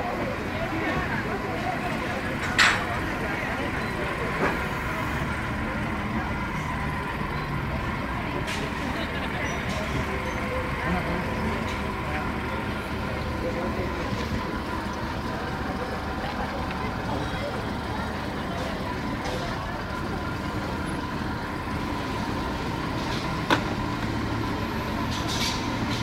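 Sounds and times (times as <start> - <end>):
truck diesel engine running: 0.0 - 26.0.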